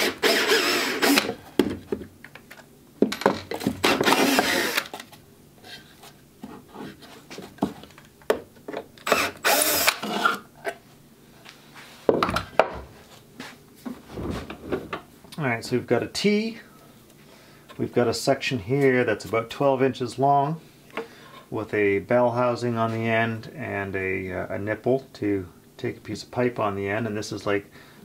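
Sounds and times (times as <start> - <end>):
cordless drill spurts: 0.0 - 1.4, 4.0 - 4.9, 9.0 - 10.4.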